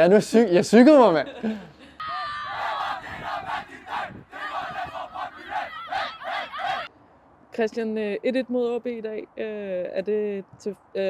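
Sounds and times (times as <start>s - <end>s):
team shouting and cheering: 2.0s - 6.9s.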